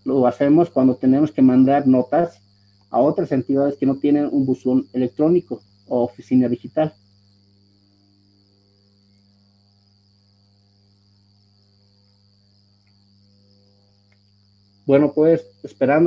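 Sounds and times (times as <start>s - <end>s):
high-pitched whine: 0.0s - 7.0s, 12.0s - 16.0s.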